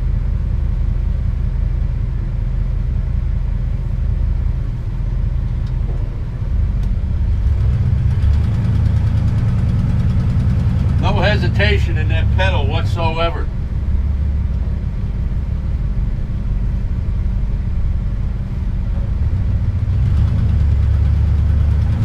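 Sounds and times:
engine rumble accelerating: 0.0 - 22.0.

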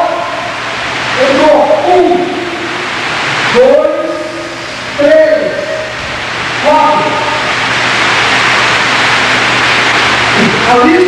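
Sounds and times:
loud steady hiss: 0.0 - 11.0.

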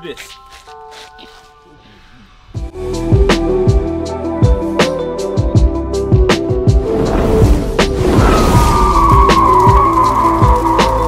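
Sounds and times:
music with steady drum beat: 2.6 - 6.9.

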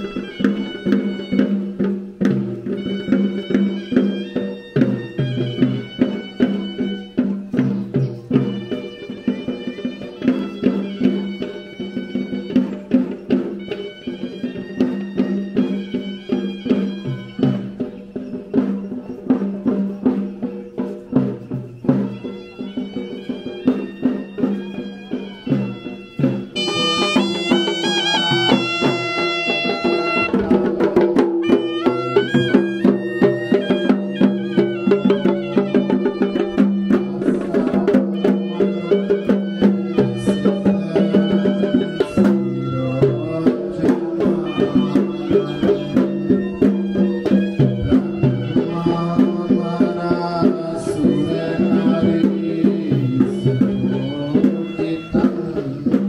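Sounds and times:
shrill reed pipe melody: 0.0 - 20.2, 21.2 - 56.0
drum beats: 0.0 - 56.0.

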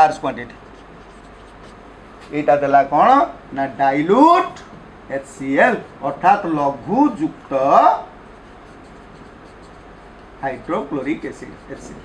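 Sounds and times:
marker writing on whiteboard: 0.0 - 1.9, 8.2 - 12.0
person speaking: 0.0 - 3.0, 5.1 - 12.0.

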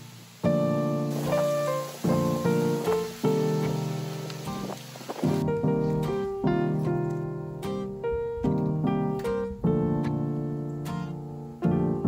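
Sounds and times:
piano music: 0.0 - 12.0.

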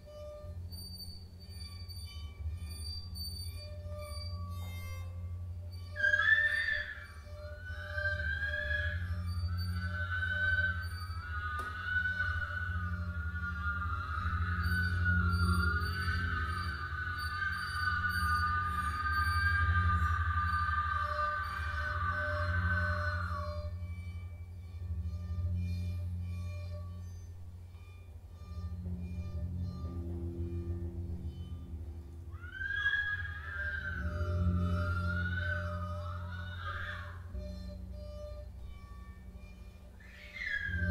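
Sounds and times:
low electronic drone: 0.0 - 40.9
woman singing high wordless tone: 8.1 - 23.8, 32.8 - 37.4.

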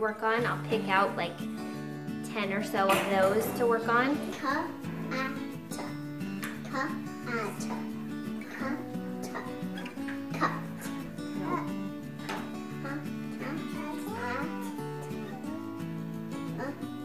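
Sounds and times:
background music with held notes: 0.0 - 17.0.

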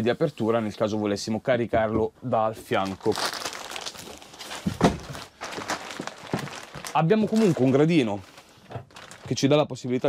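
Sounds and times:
plastic mattress wrapping rustling: 2.6 - 10.0.

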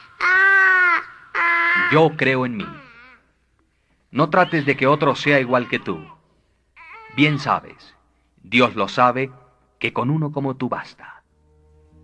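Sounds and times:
man speaking: 1.8 - 2.9, 4.1 - 6.2, 7.1 - 11.2.

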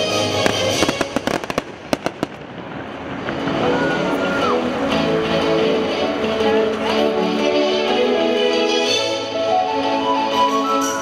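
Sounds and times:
fireworks bangs: 0.0 - 5.0
music soundtrack: 0.0 - 11.0.

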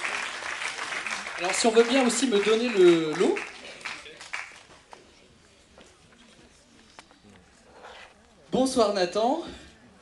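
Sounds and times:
faint murmur of voices: 3.6 - 10.0.

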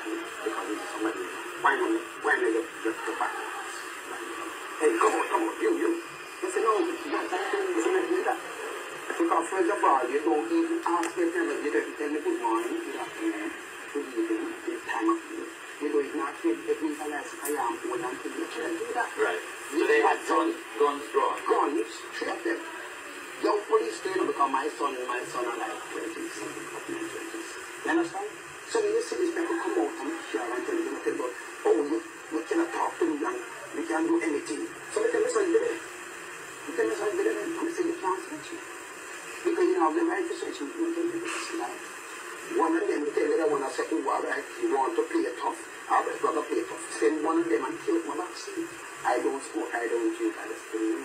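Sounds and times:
man talking through tv speaker: 0.0 - 51.0.

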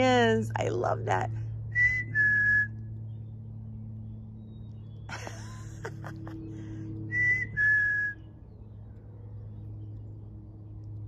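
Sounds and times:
chickadee two-note whistled song: 7.1 - 8.3.

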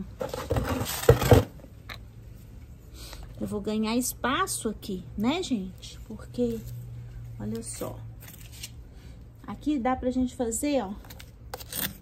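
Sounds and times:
hand tool scraping potting soil: 11.5 - 12.0.

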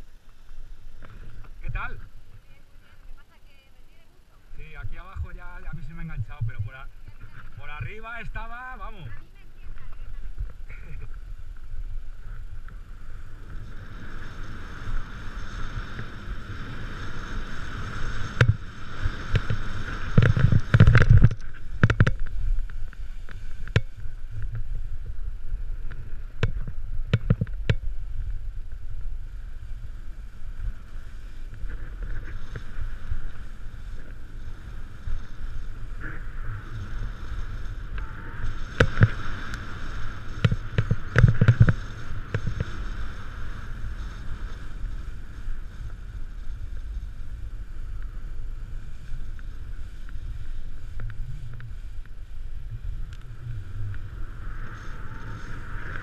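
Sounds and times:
wind rumble on microphone: 0.0 - 56.0
snowboard scraping on snow: 5.3 - 27.0, 27.9 - 56.0.

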